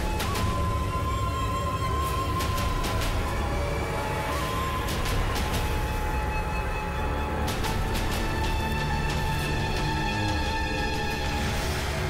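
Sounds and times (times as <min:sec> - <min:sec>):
low drone: 0:00.0 - 0:12.0.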